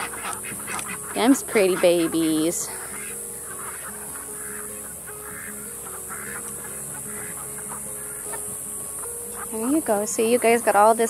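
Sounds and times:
soft background music: 0:00.0 - 0:11.0
young chickens calling: 0:00.0 - 0:11.0.

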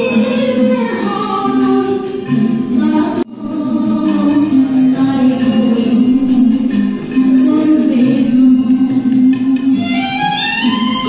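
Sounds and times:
music with singing: 0:00.0 - 0:11.0.

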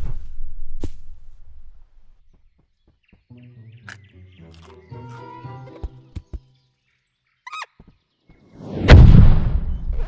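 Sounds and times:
cartoon rodent squeak: 0:07.4 - 0:07.8.

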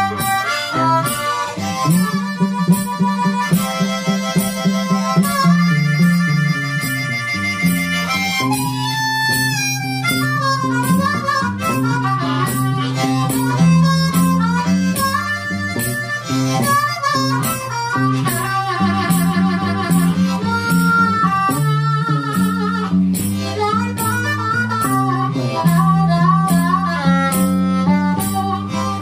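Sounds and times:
blues harmonica: 0:00.0 - 0:29.0
strummed acoustic guitar: 0:00.0 - 0:29.0.

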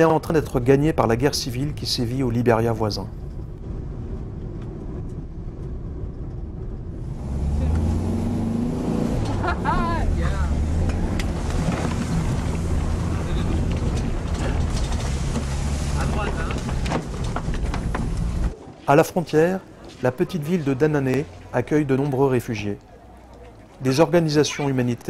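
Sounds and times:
road and wind noise: 0:00.0 - 0:25.0
car engine hum: 0:00.4 - 0:18.6, 0:19.2 - 0:25.0.

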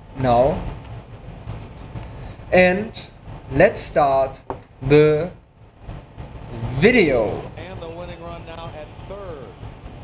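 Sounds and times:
man speaking close to microphone: 0:06.6 - 0:09.6.

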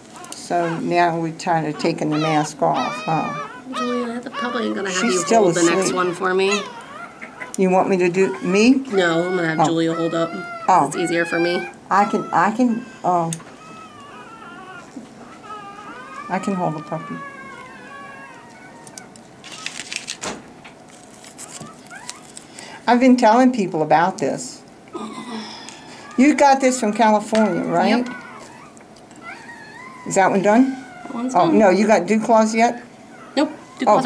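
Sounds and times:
puppies whining: 0:00.0 - 0:20.2, 0:20.8 - 0:22.6, 0:25.0 - 0:34.0.

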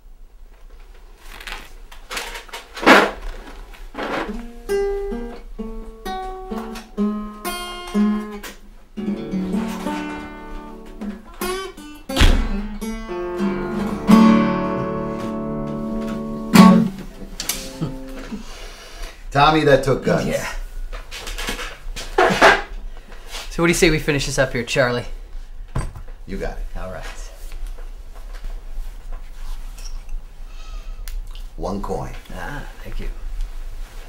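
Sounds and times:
acoustic guitar playing: 0:03.9 - 0:19.0.

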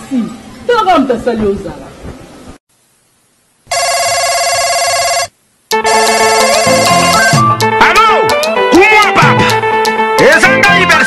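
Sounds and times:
telephone ringing: 0:03.7 - 0:07.6
music: 0:05.7 - 0:11.0.

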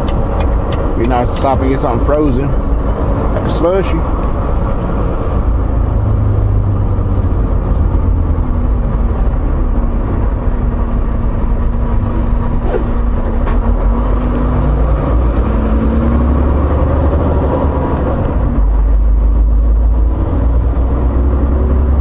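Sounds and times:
diesel truck engine running: 0:00.0 - 0:22.0
road noise: 0:00.0 - 0:22.0.

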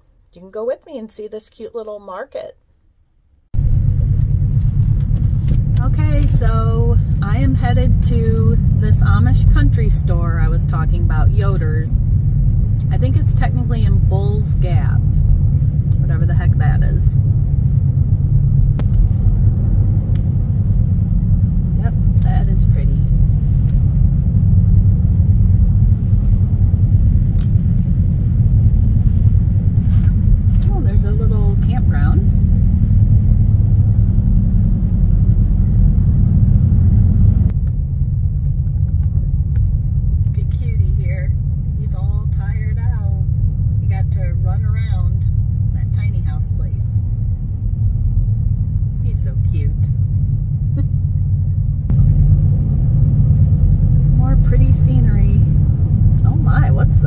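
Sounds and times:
car cabin road and engine rumble: 0:03.5 - 0:57.0.

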